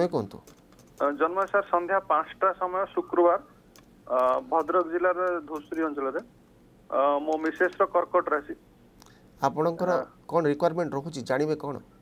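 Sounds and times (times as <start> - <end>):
person speaking over telephone: 1.0 - 3.5, 4.1 - 6.3, 6.9 - 8.6.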